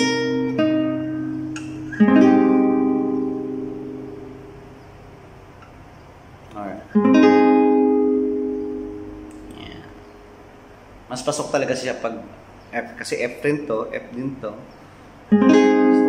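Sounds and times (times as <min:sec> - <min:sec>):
classical guitar plucked and strummed: 0:00.0 - 0:04.8, 0:06.9 - 0:09.6, 0:15.3 - 0:16.0.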